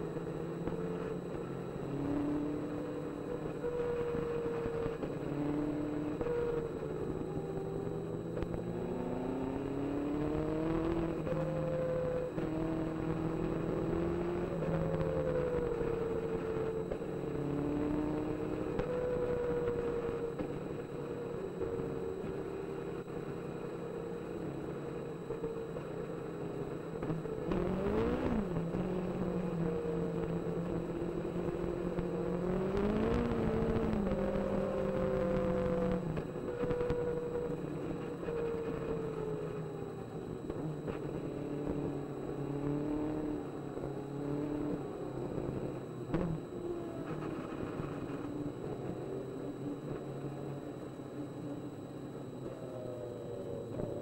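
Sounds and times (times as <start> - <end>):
race car engine revving: 27.0 - 39.4.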